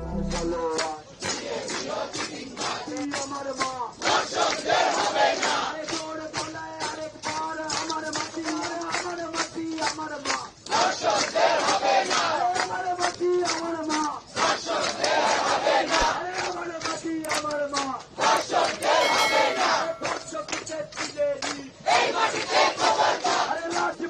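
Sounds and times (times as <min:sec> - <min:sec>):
hand-clapping: 0:00.3 - 0:21.7, 0:23.3 - 0:24.0
crowd chanting in unison: 0:01.2 - 0:03.0, 0:04.0 - 0:05.9, 0:10.7 - 0:12.4, 0:14.3 - 0:16.2, 0:21.8 - 0:24.0.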